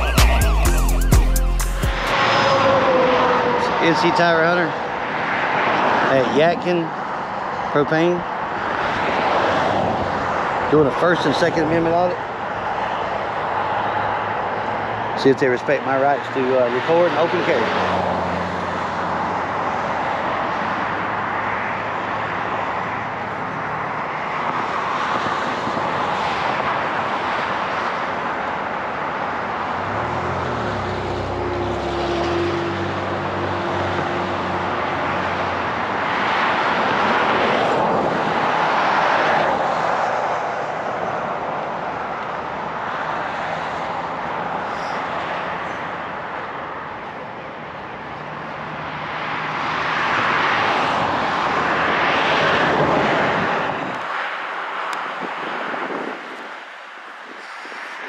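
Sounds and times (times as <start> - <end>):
vehicles driving by: 0.0 - 58.0.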